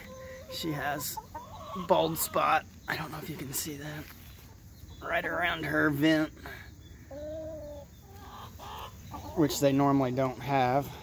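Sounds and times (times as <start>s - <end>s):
hen calling: 5.0s - 10.0s.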